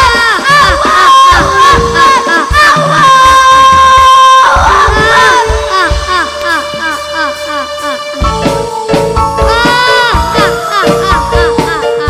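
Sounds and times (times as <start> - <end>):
low drum thumps: 0.0 - 7.2
children shouting together: 0.0 - 8.2, 9.5 - 12.0.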